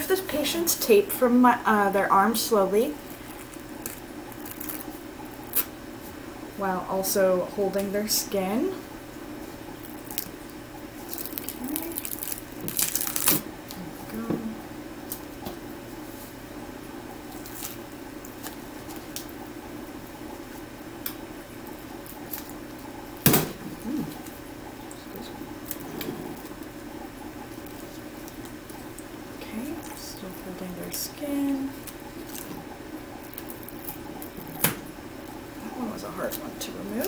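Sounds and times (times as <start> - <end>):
crackles and rustles: 2.9 - 6.2, 9.5 - 14.3
medical tape peeling: 3.1 - 5.7, 11.0 - 13.8.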